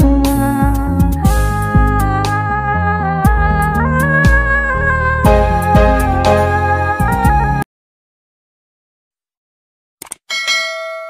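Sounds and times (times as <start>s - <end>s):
bell chime: 10.3s - 11.0s.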